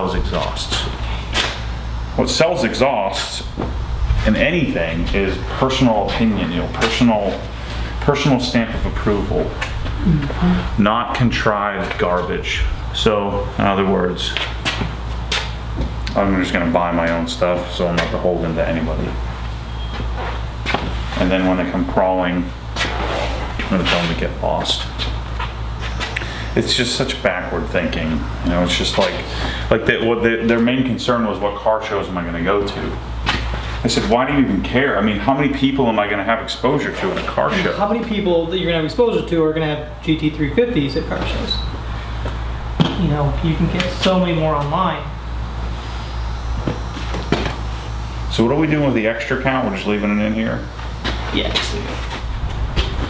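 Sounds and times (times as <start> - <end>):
low background rumble: 0.0 - 19.6, 51.6 - 53.0
low rumble: 51.8 - 53.0.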